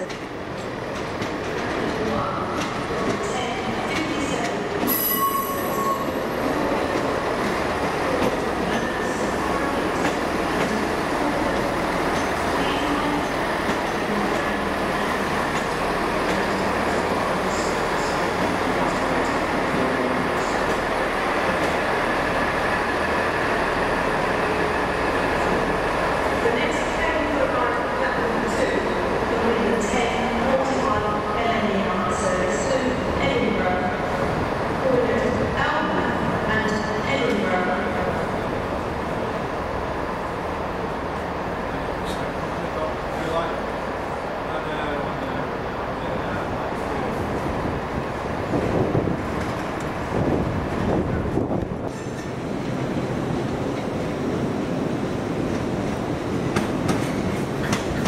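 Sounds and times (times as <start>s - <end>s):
rail noise: 0.0s - 58.0s.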